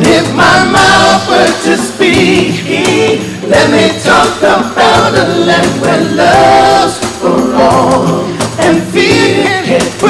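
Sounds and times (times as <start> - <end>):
male vocal group singing harmony: 0.0 - 10.0.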